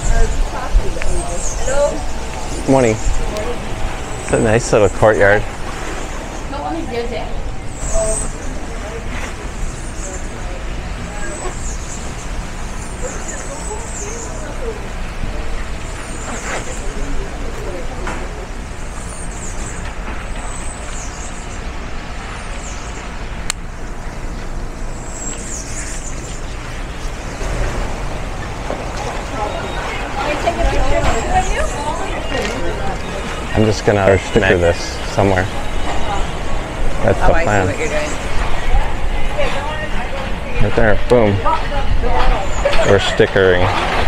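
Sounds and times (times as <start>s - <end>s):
low town rumble: 0.0s - 44.0s
people's voices: 0.0s - 44.0s.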